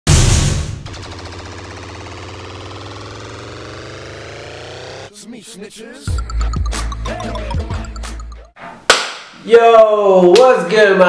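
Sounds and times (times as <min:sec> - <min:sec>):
electronic drone sinking in pitch: 0:00.7 - 0:05.2, 0:06.0 - 0:08.5.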